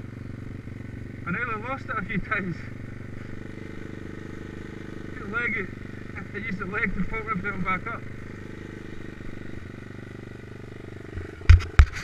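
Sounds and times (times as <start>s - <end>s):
motorbike engine idling: 0.0s - 12.0s
loud short thumps: 11.4s - 12.0s.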